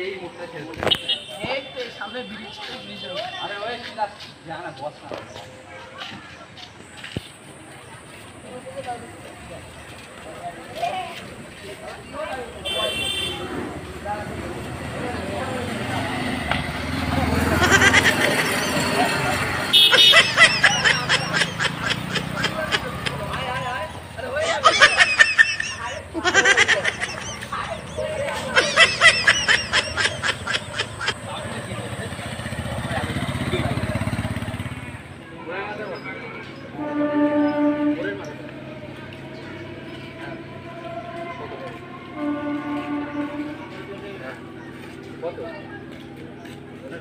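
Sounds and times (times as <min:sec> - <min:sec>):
young men talking: 0:00.0 - 0:05.7, 0:08.4 - 0:34.5, 0:35.2 - 0:36.8
motorcycle engine running: 0:30.1 - 0:35.2.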